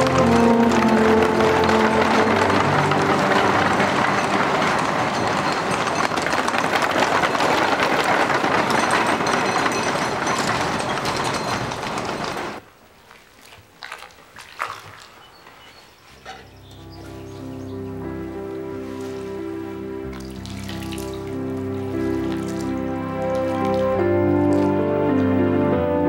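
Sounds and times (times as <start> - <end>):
soundtrack music with held notes: 0.0 - 5.2, 16.6 - 26.0
crowd hubbub: 0.0 - 12.6.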